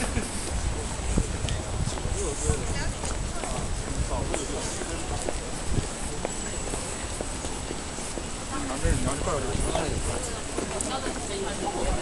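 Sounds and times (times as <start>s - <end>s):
footsteps on hard ground: 0.0s - 12.0s
steady background noise: 0.0s - 12.0s.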